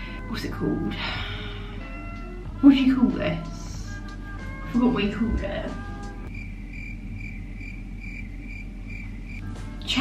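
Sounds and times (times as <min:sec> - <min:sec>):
steady low hum: 0:00.0 - 0:10.0
crickets chirping: 0:06.3 - 0:09.4.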